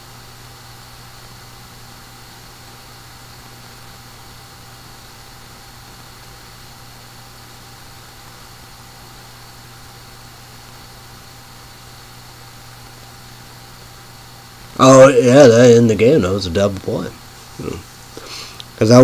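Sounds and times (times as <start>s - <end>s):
steady hum with hiss: 0.0s - 19.0s.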